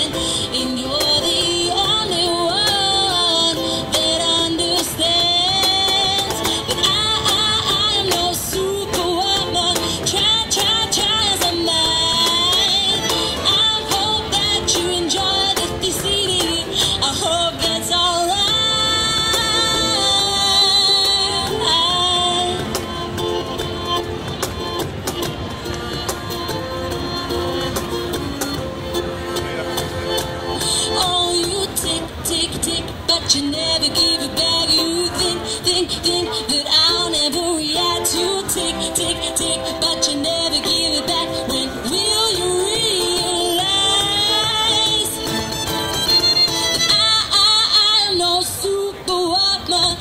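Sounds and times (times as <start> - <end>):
violin long notes: 0.0 - 48.2
cello: 0.0 - 48.7
bass: 0.0 - 50.0
cajon beat: 0.0 - 50.0
strummed ukulele: 0.0 - 50.0.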